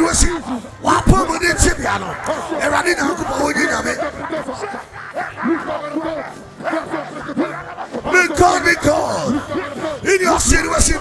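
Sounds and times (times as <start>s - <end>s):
man praying into a microphone: 0.0s - 11.0s.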